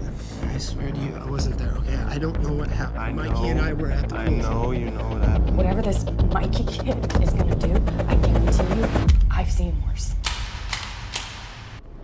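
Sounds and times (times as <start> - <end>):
sharp clicks or knocks: 10.2 - 11.8.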